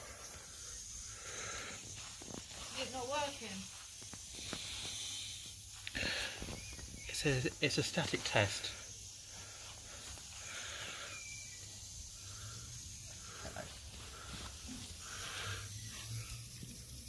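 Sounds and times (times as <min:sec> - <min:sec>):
soft steady steam hiss: 0:00.0 - 0:17.0.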